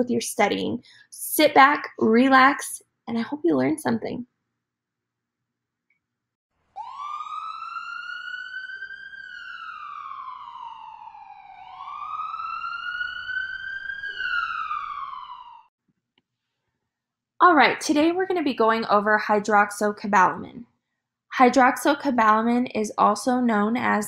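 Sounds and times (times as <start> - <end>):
emergency siren wailing: 6.8 - 15.7.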